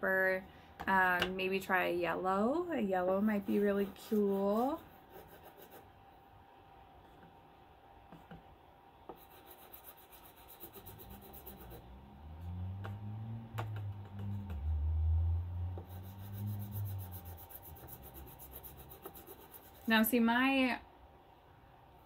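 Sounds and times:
chalk rubbing on paper: 3.3s - 5.9s, 9.1s - 11.8s, 15.8s - 20.1s.

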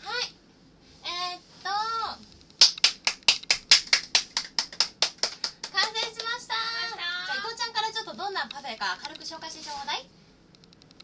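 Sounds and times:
hands clapping: 2.6s - 6.4s.

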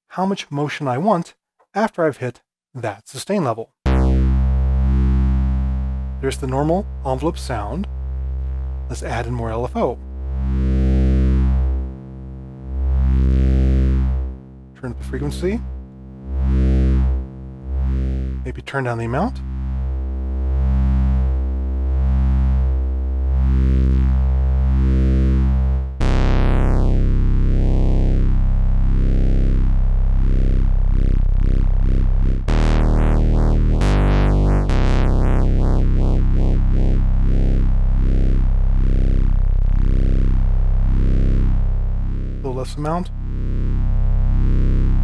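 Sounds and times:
sweeping bass synthesizer notes: 3.9s - 45.0s.

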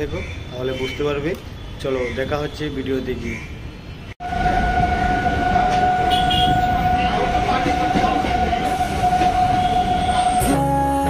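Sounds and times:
high whine: 4.2s - 11.0s
train rumbling: 4.2s - 11.0s.

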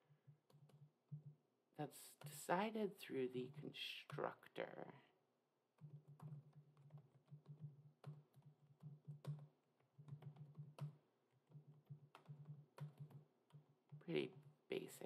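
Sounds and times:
typing on computer keyboard: 5.8s - 14.5s.

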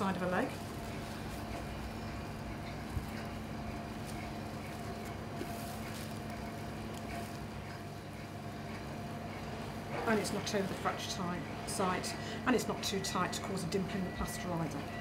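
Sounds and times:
room hum: 0.0s - 15.0s
bandage rustling: 0.1s - 8.2s.

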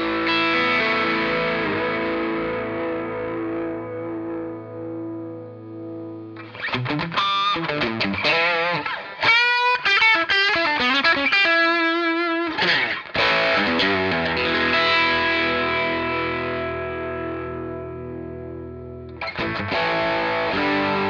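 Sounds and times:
overdriven electric guitar: 0.0s - 21.0s.

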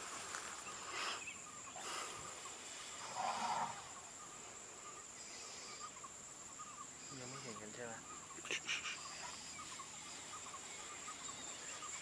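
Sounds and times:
high insect drone: 0.0s - 12.0s
small bird chirps: 3.8s - 12.0s.

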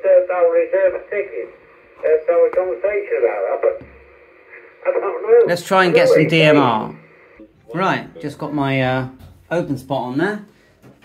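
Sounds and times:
man speaking over radio speaker: 0.0s - 10.4s.

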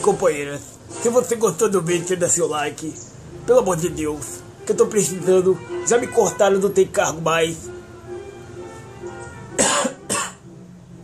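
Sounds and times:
man coughing: 9.6s - 10.4s.

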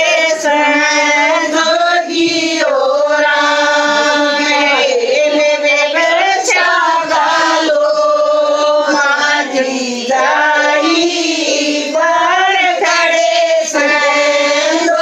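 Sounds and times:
women singing devotional song: 0.0s - 15.0s.

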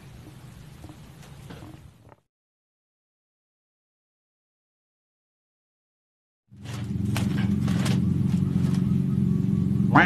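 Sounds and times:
low engine hum: 6.5s - 10.0s.

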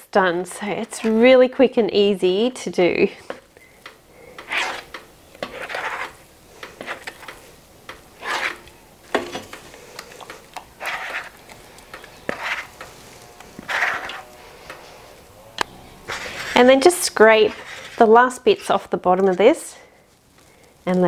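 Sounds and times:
scraper pushing wet batter: 0.7s - 1.2s, 4.3s - 14.8s, 17.4s - 18.1s.

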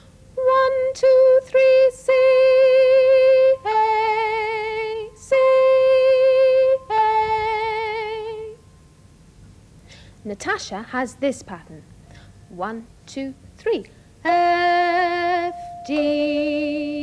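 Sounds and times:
woman singing: 0.4s - 8.6s, 13.1s - 17.0s
hand chimes: 15.2s - 17.0s.

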